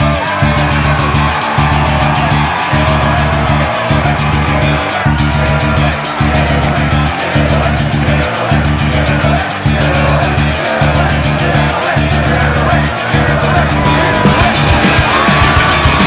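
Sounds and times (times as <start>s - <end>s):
rock music with electric guitar: 0.0s - 16.0s.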